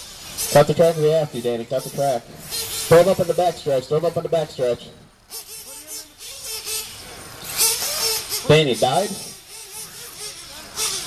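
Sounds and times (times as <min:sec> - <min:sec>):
high rushing hiss: 0:00.0 - 0:11.0
radio-controlled cars on dirt: 0:00.0 - 0:11.0
faint voices: 0:00.5 - 0:11.0.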